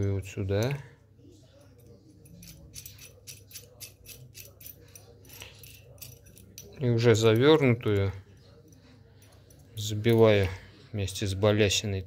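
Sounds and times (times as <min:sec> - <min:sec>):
metallic clicks and clinks: 0:01.6 - 0:10.6.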